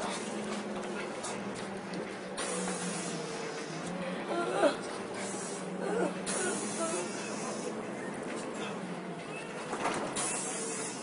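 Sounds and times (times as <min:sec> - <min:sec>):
bus interior hum and hiss: 0:00.0 - 0:11.0
faint voices: 0:02.4 - 0:09.7.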